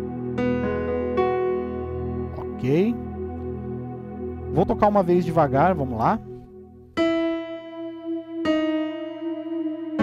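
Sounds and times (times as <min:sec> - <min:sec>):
electronic keyboard piano notes: 0:00.0 - 0:10.0.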